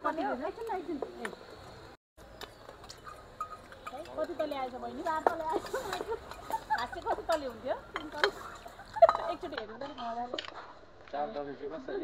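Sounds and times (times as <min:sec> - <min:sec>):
people laughing: 0:05.4 - 0:07.5, 0:08.4 - 0:09.6.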